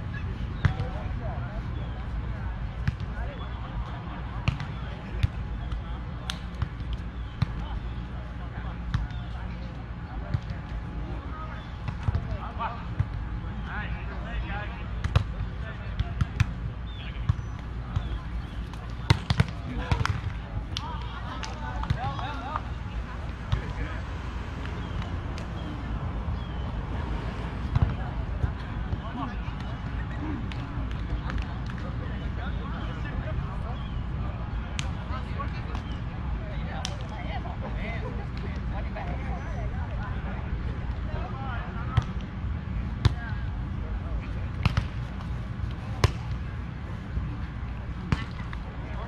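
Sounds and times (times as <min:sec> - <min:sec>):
distant voices: 0:00.0 - 0:49.0
hand slapping volleyball: 0:04.4 - 0:07.6, 0:17.3 - 0:22.7.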